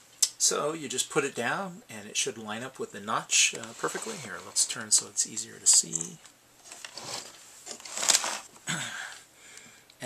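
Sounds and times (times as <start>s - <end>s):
soft handling rustles: 3.4s - 8.6s.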